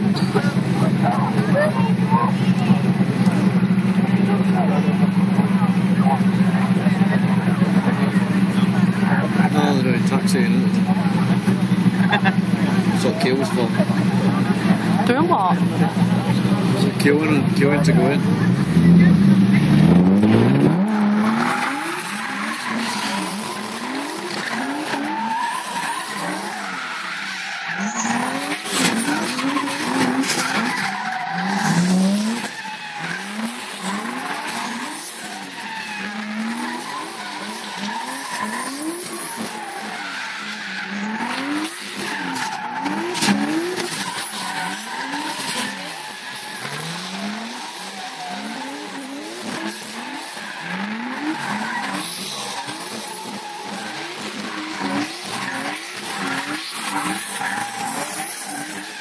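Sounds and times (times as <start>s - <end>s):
car engines revving: 0.0s - 59.0s
tyre squeal: 18.6s - 59.0s.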